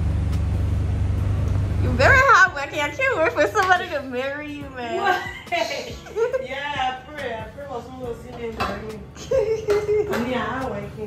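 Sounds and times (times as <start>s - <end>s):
steady low rumble: 0.0s - 8.1s.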